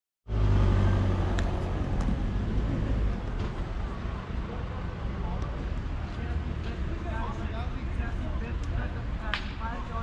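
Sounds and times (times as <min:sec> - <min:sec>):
road traffic rumble: 0:00.3 - 0:10.0.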